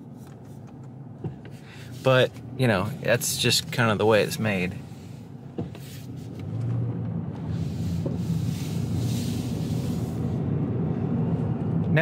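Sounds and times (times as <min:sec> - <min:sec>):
car engine hum: 0:00.0 - 0:12.0
tyre and road noise: 0:00.0 - 0:12.0.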